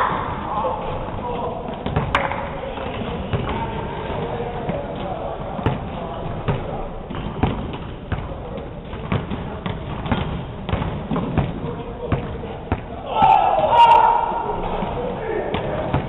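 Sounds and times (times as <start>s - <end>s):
basketballs bouncing on wooden floor: 1.0s - 13.4s, 14.6s - 16.0s.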